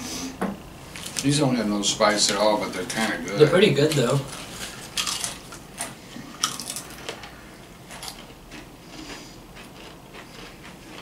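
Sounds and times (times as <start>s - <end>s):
potato crisps crunching: 3.5s - 7.3s, 7.9s - 11.0s.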